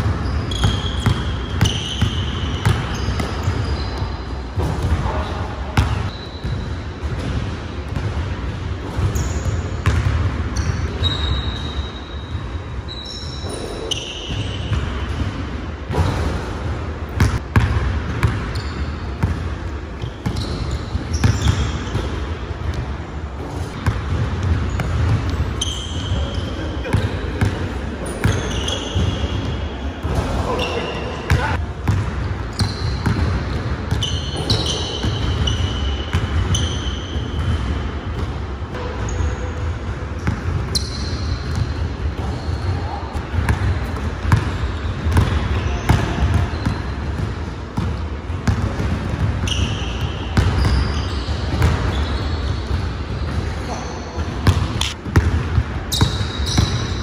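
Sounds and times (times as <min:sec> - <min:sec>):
sneakers squeaking on hardwood: 0:00.0 - 0:06.6, 0:09.0 - 0:15.2, 0:18.2 - 0:19.3, 0:20.0 - 0:22.1, 0:23.7 - 0:33.3, 0:33.9 - 0:37.6, 0:39.0 - 0:43.6, 0:44.3 - 0:47.3, 0:48.4 - 0:55.3, 0:55.9 - 0:57.0
basketball bouncing on wooden floor: 0:54.4 - 0:56.9.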